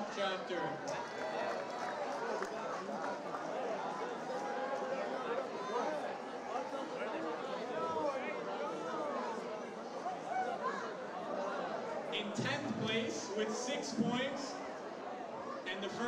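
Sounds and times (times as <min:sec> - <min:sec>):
crowd chatter in large hall: 0:00.0 - 0:16.0.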